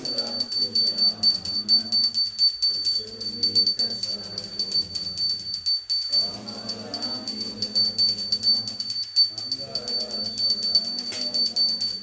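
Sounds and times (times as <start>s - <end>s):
devotional singing: 0.0s - 12.0s
hand bell ringing: 0.0s - 12.0s
hand cymbals struck: 0.0s - 12.0s.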